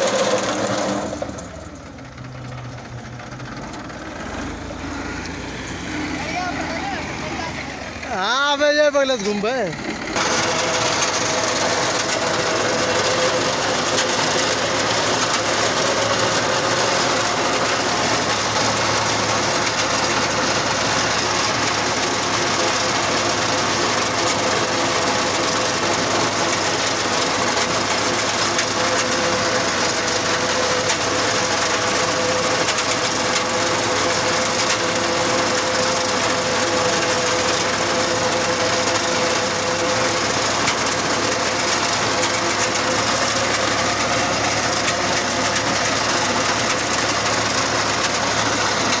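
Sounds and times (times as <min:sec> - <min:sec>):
reaper engine drone: 0:00.0 - 0:49.0.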